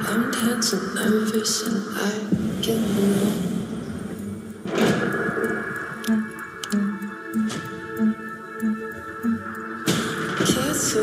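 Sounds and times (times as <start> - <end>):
sustained soundtrack tones: 2.4 - 11.0.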